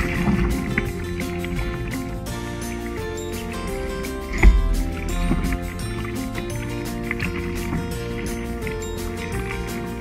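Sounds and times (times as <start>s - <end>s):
music with steady beat: 0.1s - 10.0s
loud low thump: 4.4s - 5.6s.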